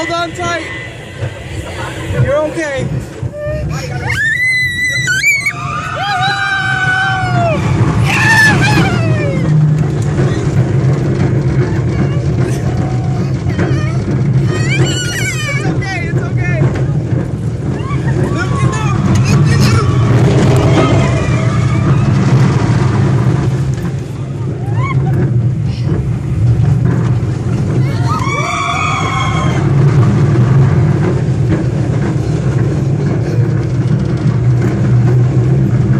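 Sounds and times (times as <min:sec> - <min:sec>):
roller coaster rumbling on track: 0:00.0 - 0:35.9
child crying out: 0:13.9 - 0:15.7.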